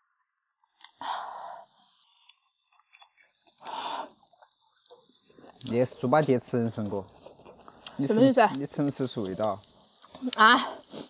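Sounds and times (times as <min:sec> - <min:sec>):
breathy exhale through full mouth: 0:03.6 - 0:04.2.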